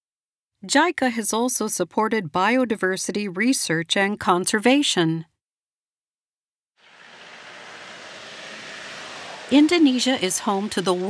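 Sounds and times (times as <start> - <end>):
outdoor rushing hiss: 6.8 - 11.0.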